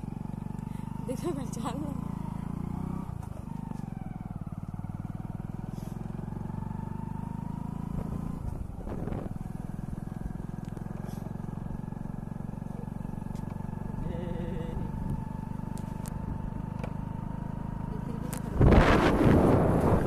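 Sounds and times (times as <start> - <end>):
high engine whine: 0.0 - 20.0
vehicle engine running: 0.0 - 20.0.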